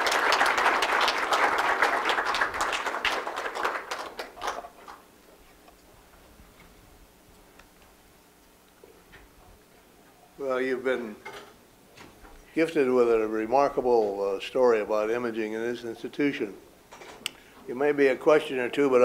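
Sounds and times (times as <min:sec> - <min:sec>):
audience applauding: 0:00.0 - 0:05.0.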